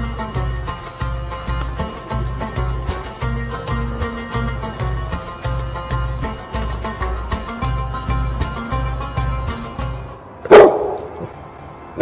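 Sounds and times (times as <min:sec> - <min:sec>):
dog barking: 0:10.5 - 0:11.2.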